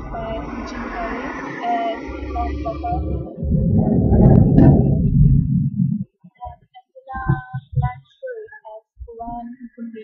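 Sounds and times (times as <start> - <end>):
young woman singing phrases: 0.0 - 3.3, 6.4 - 10.0.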